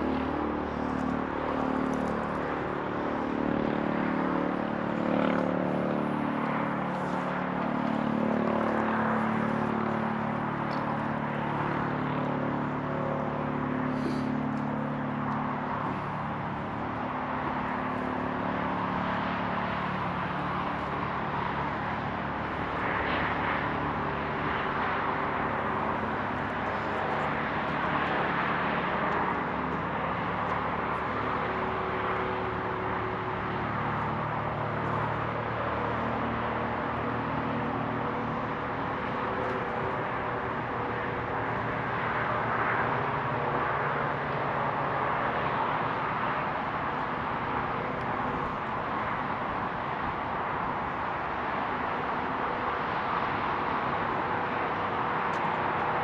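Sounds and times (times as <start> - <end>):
distant traffic rushing: 0.0 - 56.0
low engine-like hum: 0.0 - 56.0.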